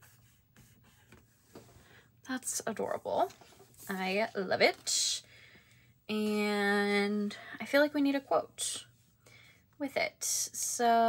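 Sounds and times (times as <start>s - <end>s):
fingertip rubbing paper: 0.0s - 1.6s.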